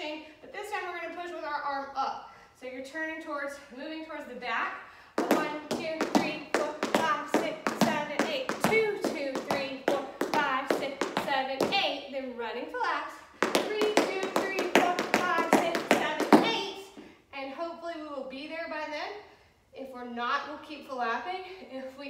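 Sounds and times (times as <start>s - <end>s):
woman calling rhythm: 2.8s - 17.6s
tap shoes on hard floor: 5.2s - 11.8s, 13.4s - 16.8s.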